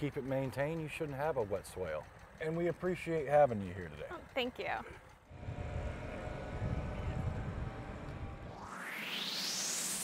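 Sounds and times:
low outdoor rumble: 0:00.0 - 0:08.9
whoosh rising in pitch: 0:05.3 - 0:10.0.

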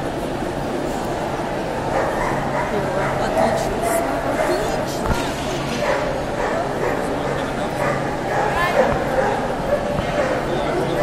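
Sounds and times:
crowd chattering: 0:00.0 - 0:11.0
dogs barking and yipping: 0:01.9 - 0:04.8, 0:05.7 - 0:10.9.

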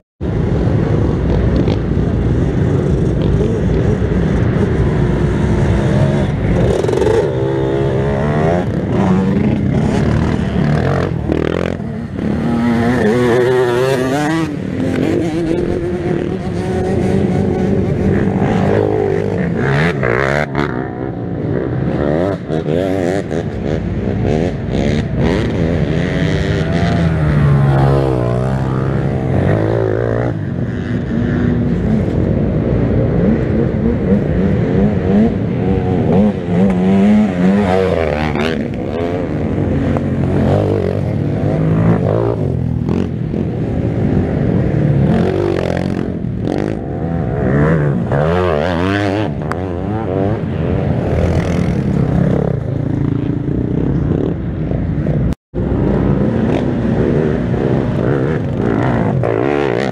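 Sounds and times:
atv engines revving: 0:00.2 - 0:59.9.

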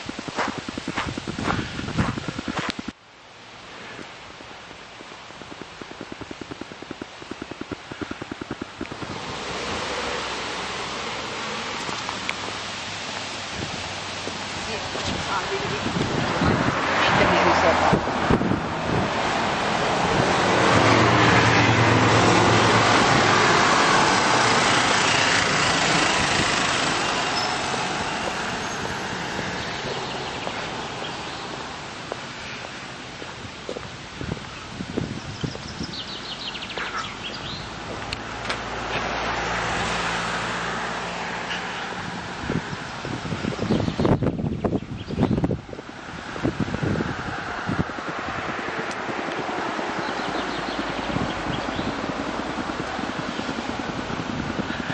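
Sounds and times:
car passing: 0:08.9 - 0:33.6, 0:36.1 - 0:43.6, 0:45.9 - 0:54.9
quieter vehicle passing: 0:13.8 - 0:33.0, 0:36.2 - 0:42.9.

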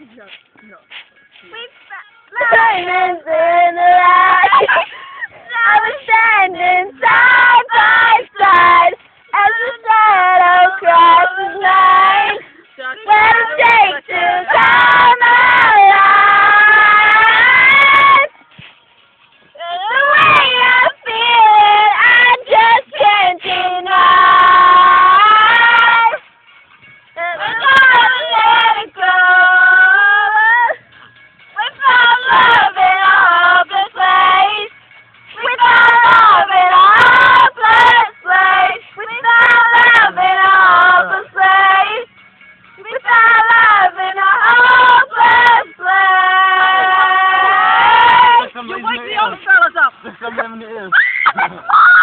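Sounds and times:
voices singing held notes: 0:01.4 - 0:18.6, 0:19.5 - 0:26.3, 0:27.2 - 0:42.2, 0:42.8 - 0:51.7
person crying out high-pitched: 0:50.9 - 0:52.0.

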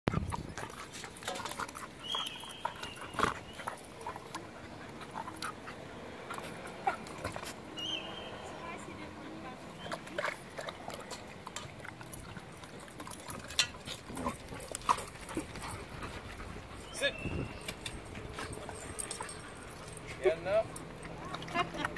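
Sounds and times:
dogs panting: 0:00.1 - 0:07.8, 0:08.8 - 0:21.9
dogs play-wrestling: 0:00.1 - 0:07.8, 0:09.8 - 0:21.9.

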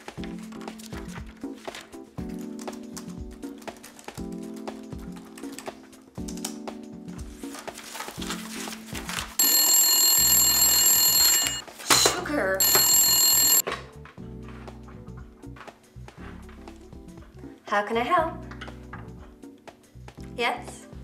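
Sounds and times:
background music: 0:00.0 - 0:21.0
telephone bell ringing: 0:09.4 - 0:13.6.

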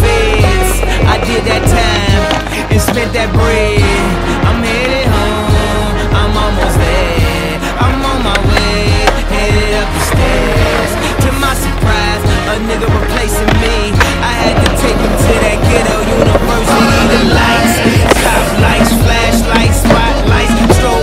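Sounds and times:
hip-hop backing track: 0:00.0 - 0:21.0
skateboard grinding and clacking: 0:00.0 - 0:21.0
skateboard wheels rolling on concrete: 0:00.0 - 0:21.0.

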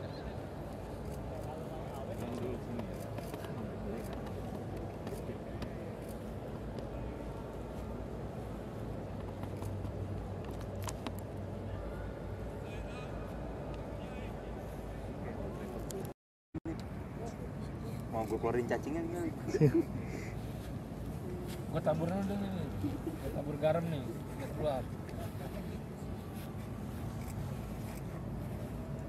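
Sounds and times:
steady low hum: 0:16.7 - 0:29.0.

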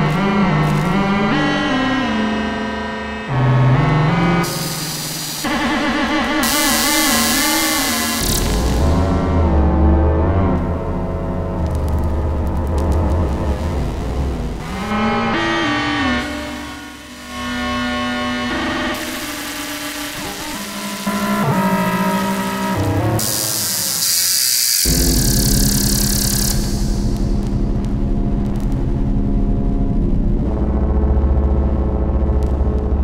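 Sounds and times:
deep bass drone: 0:06.3 - 0:19.9, 0:24.8 - 0:33.0.

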